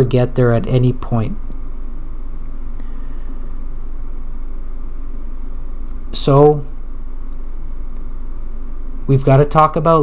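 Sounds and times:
room noise hum and rumble: 0.0s - 10.0s.

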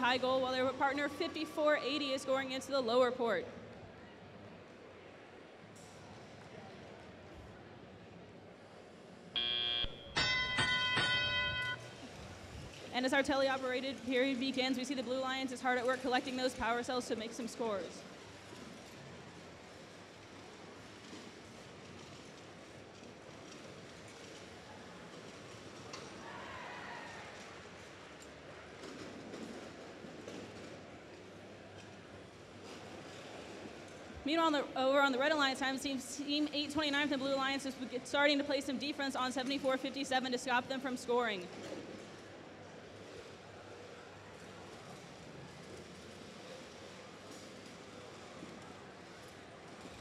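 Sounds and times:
faint hall noise: 0.0s - 50.0s
crowd: 3.6s - 12.7s, 18.1s - 34.2s
field buzzer: 9.4s - 11.8s
ringing bell tones: 9.4s - 12.0s.

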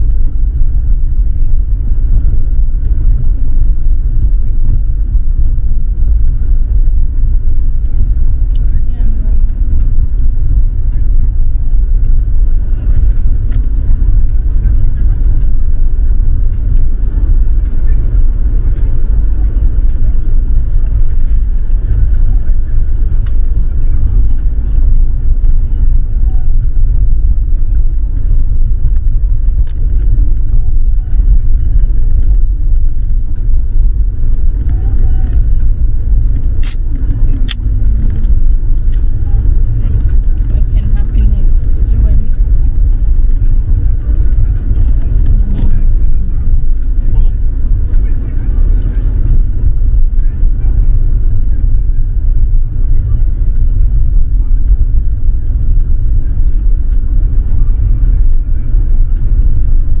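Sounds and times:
tyres rumbling on dirt road: 0.0s - 60.0s.

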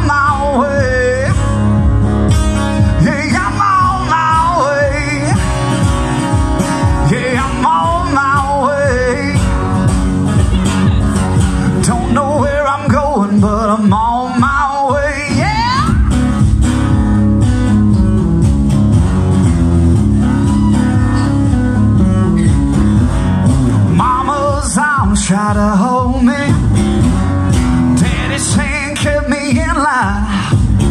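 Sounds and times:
man singing: 0.0s - 17.2s, 23.8s - 30.9s
strummed acoustic guitar: 0.0s - 30.9s.

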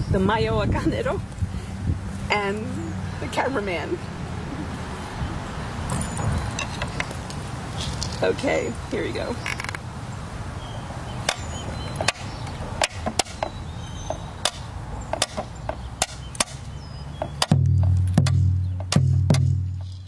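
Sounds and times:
wooden stick strikes: 11.2s - 20.0s
deep drum beats: 17.2s - 19.9s.

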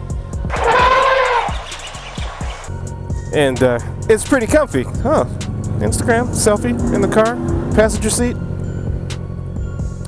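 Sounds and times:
background music with steady beat: 0.0s - 10.0s
elephant trumpeting: 0.5s - 2.7s.

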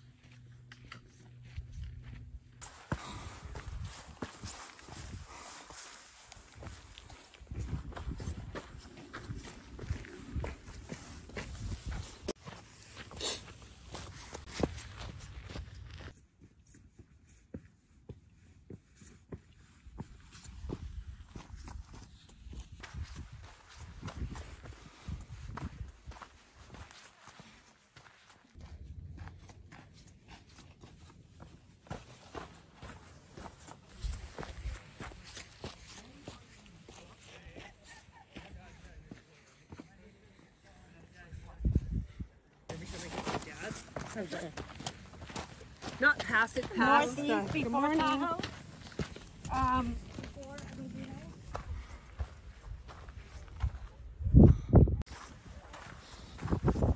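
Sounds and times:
footsteps on dirt and rock: 0.0s - 41.0s, 41.6s - 56.9s.

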